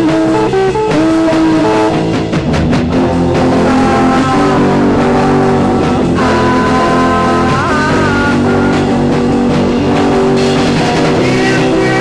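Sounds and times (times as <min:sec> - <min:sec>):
guitar sustained notes: 0:00.0 - 0:12.0
rock band playing: 0:00.0 - 0:12.0.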